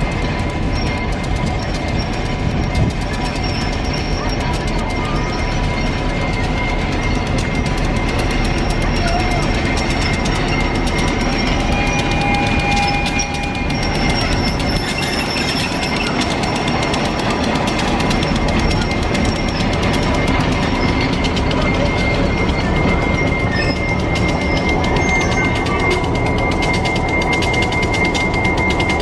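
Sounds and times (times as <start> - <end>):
diesel locomotive rumbling: 0.0 - 29.0
thin steady tones: 0.0 - 29.0.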